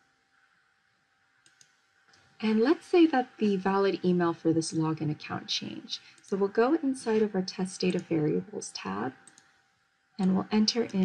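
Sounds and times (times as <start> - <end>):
computer mouse double click: 1.4 - 1.7.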